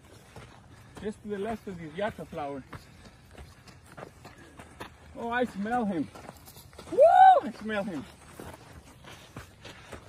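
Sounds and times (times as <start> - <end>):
footsteps crunching on sandy dirt: 0.0 - 10.0.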